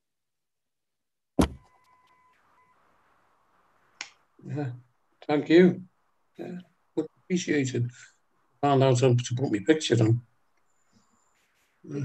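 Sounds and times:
sharp thump: 1.4 - 1.7
faint steady high tone: 1.6 - 3.0
faint hiss: 1.7 - 12.0.

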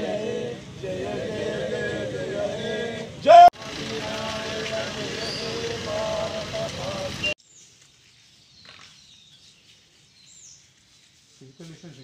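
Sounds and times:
group of people singing: 0.0 - 7.4.

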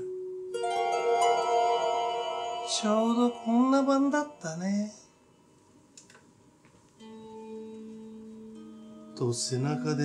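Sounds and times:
harp notes ringing: 0.0 - 5.6.

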